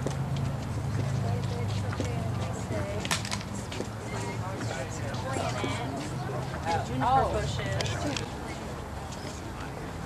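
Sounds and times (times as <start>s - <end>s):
distant people talking: 0.6s - 10.0s.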